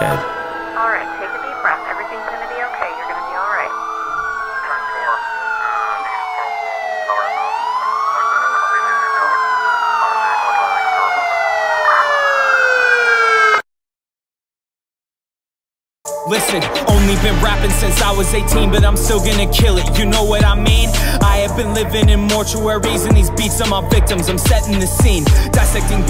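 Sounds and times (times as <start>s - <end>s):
siren with falling sweeps: 0.0s - 13.7s, 16.1s - 26.0s
wailing siren: 0.0s - 13.7s, 16.1s - 26.0s.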